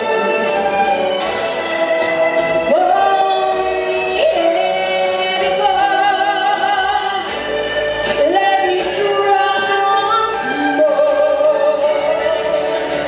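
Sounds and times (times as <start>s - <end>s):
instrumental backing music: 0.0s - 13.0s
woman singing into microphone: 2.6s - 7.5s, 8.1s - 13.0s.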